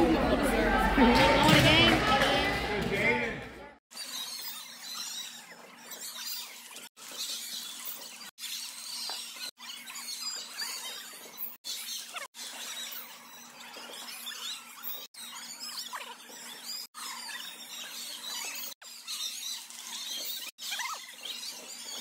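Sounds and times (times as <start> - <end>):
background chatter: 0.0 - 3.8
shoes squeaking on gym floor: 4.0 - 22.0.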